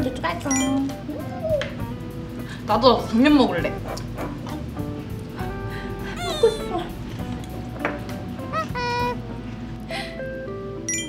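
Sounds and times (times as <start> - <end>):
light background music: 0.0 - 11.0.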